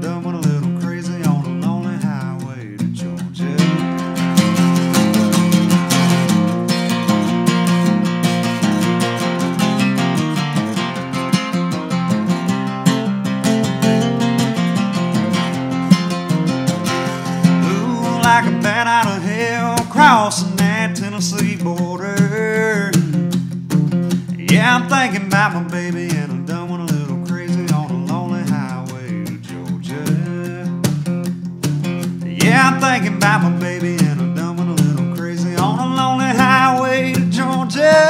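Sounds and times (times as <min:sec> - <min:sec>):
person singing: 0:00.0 - 0:04.8, 0:16.8 - 0:23.3, 0:24.2 - 0:31.0, 0:32.2 - 0:38.0
acoustic guitar strumming: 0:00.0 - 0:38.0.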